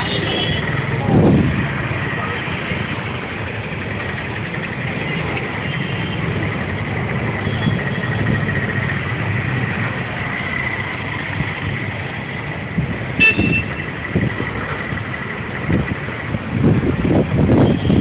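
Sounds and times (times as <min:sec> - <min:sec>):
road traffic passing: 0:00.0 - 0:18.0.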